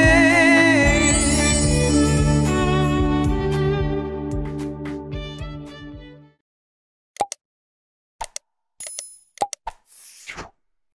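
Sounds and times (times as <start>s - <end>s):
bell chime: 0.9s - 2.6s.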